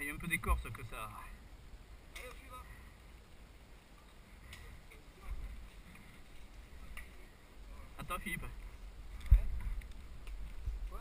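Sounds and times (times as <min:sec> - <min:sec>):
faint distant voices: 0:00.0 - 0:11.0
wind rumble on microphone: 0:08.5 - 0:11.0.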